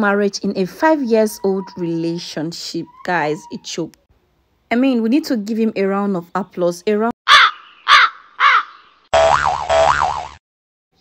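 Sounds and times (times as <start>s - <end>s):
crow cawing: 7.3s - 8.9s
warbling tone: 9.2s - 10.4s.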